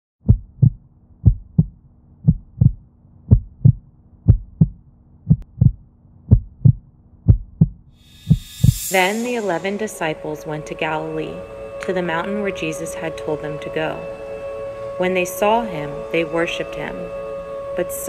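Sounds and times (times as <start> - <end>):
heartbeat thumps: 0.2 - 8.9.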